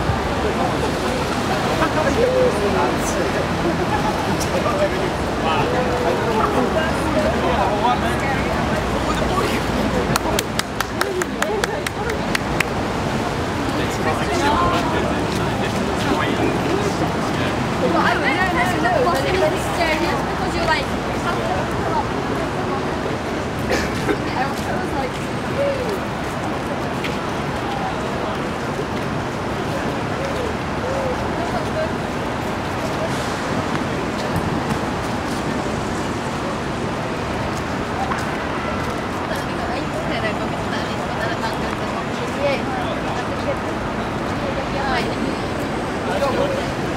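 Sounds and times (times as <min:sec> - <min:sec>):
steady outdoor noise: 0:00.0 - 0:46.9
voices: 0:00.0 - 0:46.9.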